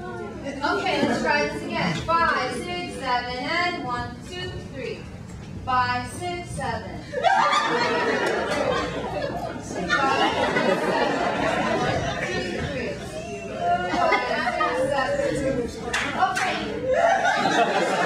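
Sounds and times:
audience chattering: 0:00.0 - 0:05.1, 0:06.6 - 0:18.0
audience laughing: 0:07.1 - 0:15.6, 0:16.8 - 0:18.0.

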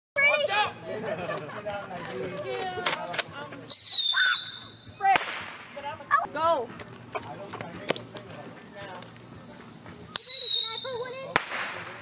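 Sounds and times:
whistling firework: 0:03.7 - 0:05.4, 0:10.2 - 0:11.9.

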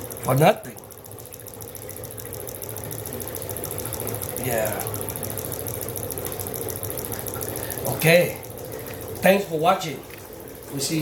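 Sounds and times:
low steady hum: 0:00.0 - 0:11.0
motor fast even ticking: 0:00.0 - 0:11.0.

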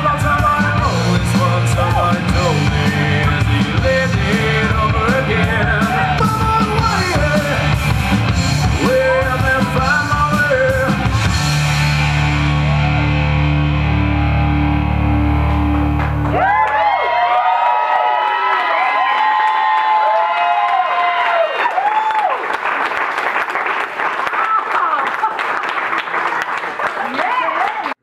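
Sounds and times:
audience cheering: 0:00.0 - 0:09.7, 0:10.3 - 0:28.0
distorted rock guitar music: 0:00.0 - 0:16.4
applause: 0:15.9 - 0:28.0.

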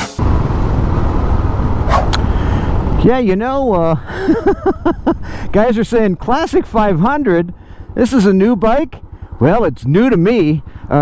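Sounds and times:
music: 0:00.0 - 0:00.2
motorcycle engine running: 0:00.2 - 0:11.0.

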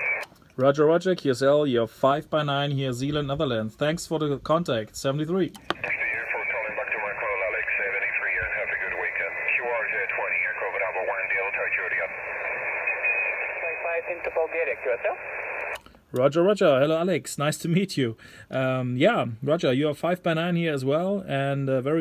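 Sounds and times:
steady radio hiss: 0:00.0 - 0:00.2, 0:05.6 - 0:15.8
narrow-band radio speech: 0:05.6 - 0:15.8.

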